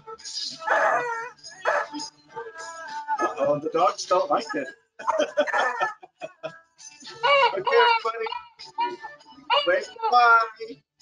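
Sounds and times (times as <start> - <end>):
dogs barking and yipping: 0.6 - 2.1, 5.0 - 6.0.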